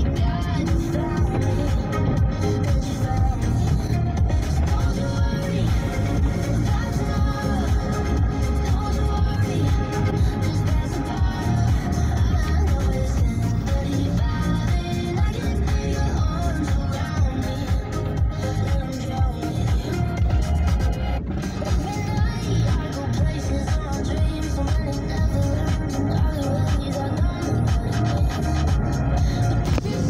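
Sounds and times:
car radio music with bass beat: 0.0s - 30.0s.

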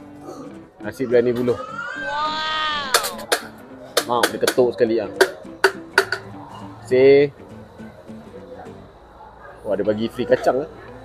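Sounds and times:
person exclaiming: 1.0s - 3.2s
knocks on bamboo tube: 3.0s - 4.6s, 5.2s - 6.3s.

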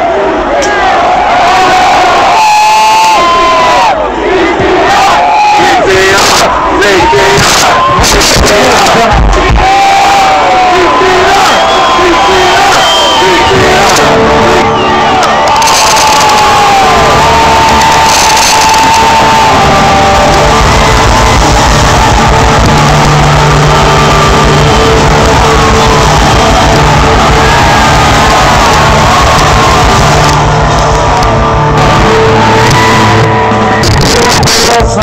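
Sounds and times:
audience shouting and whooping: 0.0s - 35.0s
live rock band playing: 13.5s - 35.0s
steady low beat: 18.8s - 34.2s.

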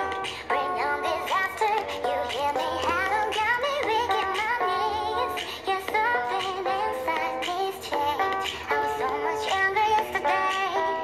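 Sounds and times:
song with sung melody: 0.0s - 11.0s.

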